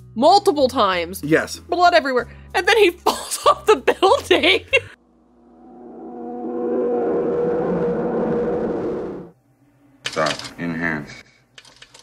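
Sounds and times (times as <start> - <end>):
droning soundtrack hum: 4.9 - 9.9.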